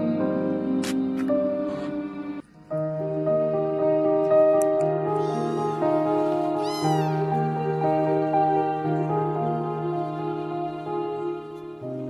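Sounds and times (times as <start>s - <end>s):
soft background music: 0.0s - 12.0s
kitten meowing: 5.2s - 5.8s, 6.4s - 7.3s.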